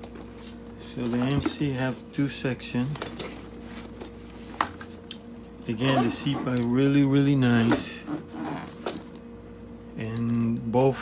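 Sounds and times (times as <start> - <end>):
metal zipper pulls clinking: 3.2 - 9.3.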